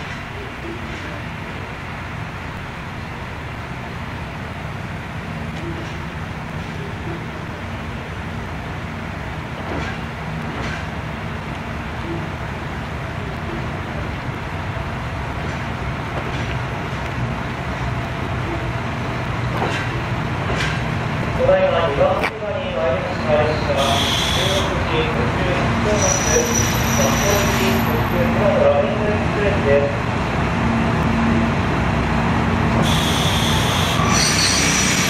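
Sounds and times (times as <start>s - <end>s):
diesel train engine rumble: 0.0s - 35.0s.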